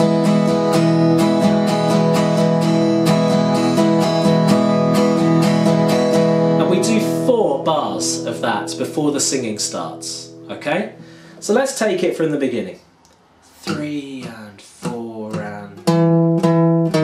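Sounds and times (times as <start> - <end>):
acoustic guitar strumming: 0.0 - 11.7, 13.6 - 17.0.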